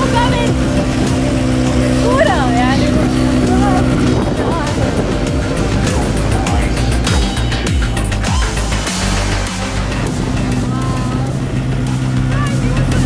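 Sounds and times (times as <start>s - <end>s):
rally car engine running: 0.0s - 13.0s.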